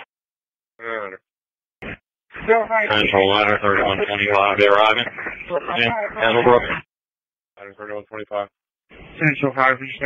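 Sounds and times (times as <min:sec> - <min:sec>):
voice over two-way radio: 0:02.4 - 0:06.8.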